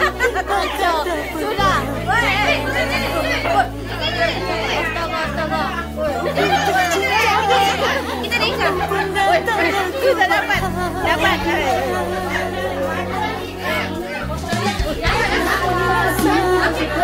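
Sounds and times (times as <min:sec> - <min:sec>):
background music with low notes: 0:00.0 - 0:17.0
women talking and calling out: 0:00.0 - 0:17.0.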